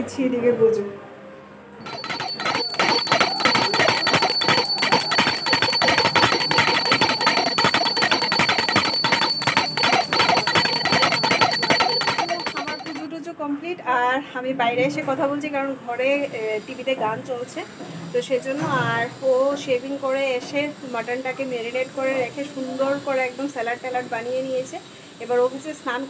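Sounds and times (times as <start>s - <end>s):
small brass hand bell ringing: 1.8s - 13.1s.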